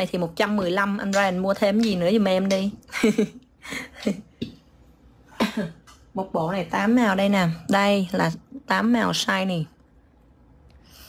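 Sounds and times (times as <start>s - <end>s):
woman coughing: 5.3s - 5.9s.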